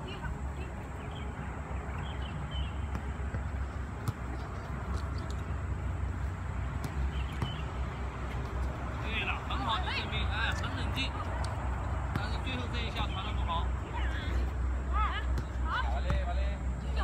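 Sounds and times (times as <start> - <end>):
footballs being kicked: 2.8 - 5.5, 6.2 - 9.1, 10.5 - 13.1.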